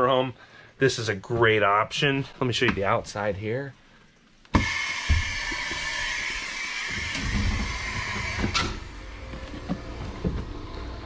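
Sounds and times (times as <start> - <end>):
footsteps and handling knocks: 1.2 - 3.4, 7.4 - 11.0.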